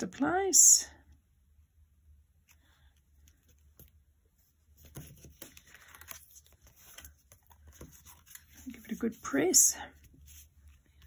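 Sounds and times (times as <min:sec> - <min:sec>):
paper card rustling and tapping: 0:04.8 - 0:09.2.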